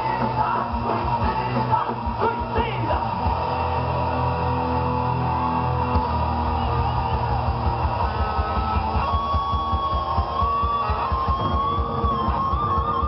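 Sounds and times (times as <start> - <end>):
rapid bass drum beat: 0.0 - 3.8, 5.9 - 13.0
distorted electric guitars: 0.0 - 13.0.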